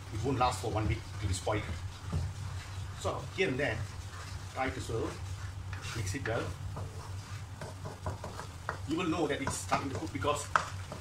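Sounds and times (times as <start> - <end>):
paste sizzling in hot oil: 0.0 - 11.0
spatula scraping wok: 0.0 - 11.0.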